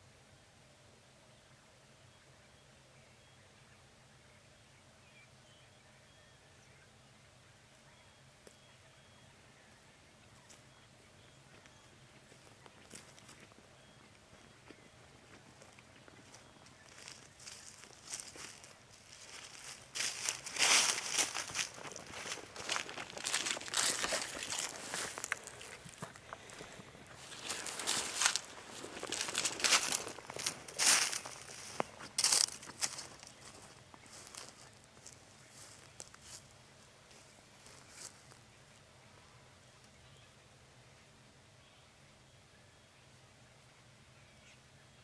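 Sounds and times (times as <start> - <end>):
footsteps crunching through dry leaves: 14.6 - 36.5.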